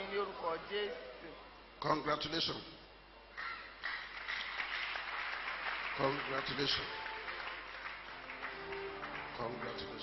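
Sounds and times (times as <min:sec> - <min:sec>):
congregation clapping: 0:03.4 - 0:10.0.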